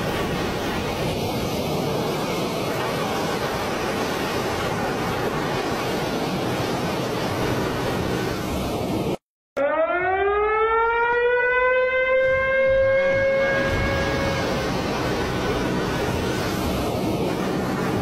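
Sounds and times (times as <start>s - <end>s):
water rushing through dam gates: 0.0s - 9.2s, 12.7s - 18.0s
siren: 9.6s - 16.2s.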